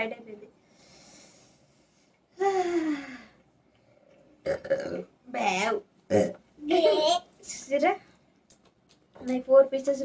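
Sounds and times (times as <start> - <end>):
person burping: 4.4 - 5.1, 6.1 - 6.4.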